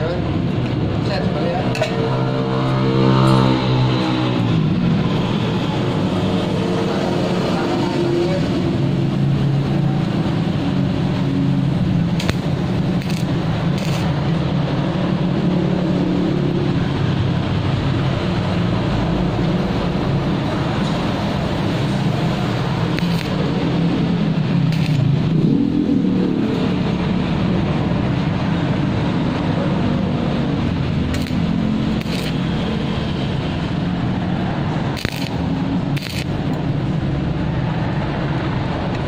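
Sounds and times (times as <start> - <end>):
loud low machine drone: 0.0 - 39.0.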